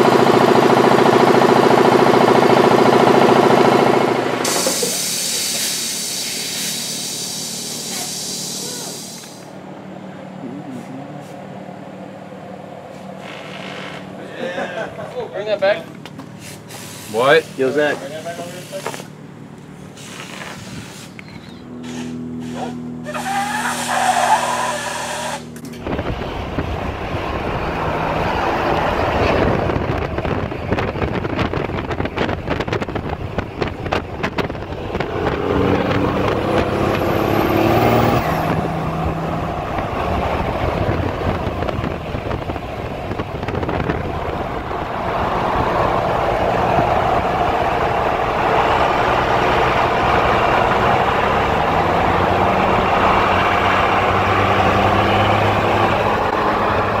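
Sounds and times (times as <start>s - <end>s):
road and wind noise: 0.0s - 57.0s
truck engines running: 0.0s - 57.0s.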